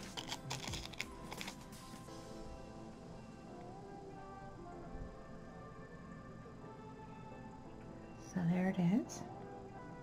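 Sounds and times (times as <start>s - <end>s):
plastic sleeve crinkling: 0.0s - 1.7s
background music: 0.0s - 10.0s.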